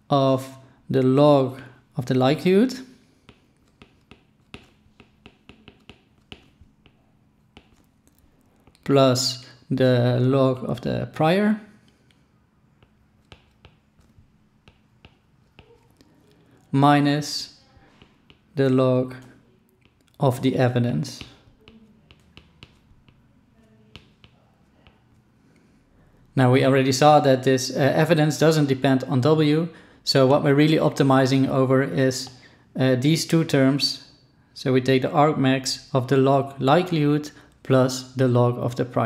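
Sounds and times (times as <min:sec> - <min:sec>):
stylus tapping on tablet screen: 0:03.2 - 0:08.8, 0:12.8 - 0:16.0, 0:17.8 - 0:18.6, 0:19.8 - 0:20.2, 0:21.2 - 0:25.2.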